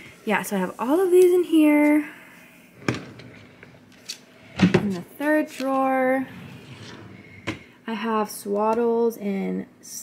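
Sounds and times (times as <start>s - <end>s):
drawer being pushed shut: 2.8s - 3.5s.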